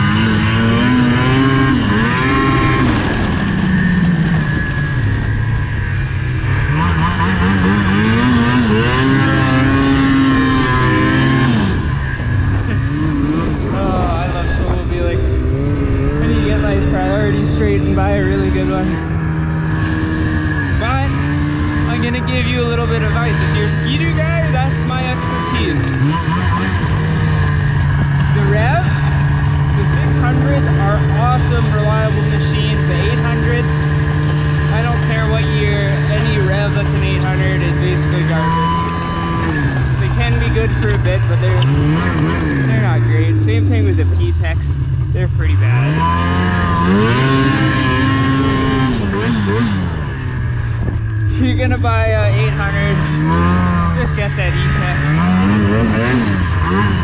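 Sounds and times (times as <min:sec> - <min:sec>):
snowmobile engine running: 0:00.0 - 0:57.0.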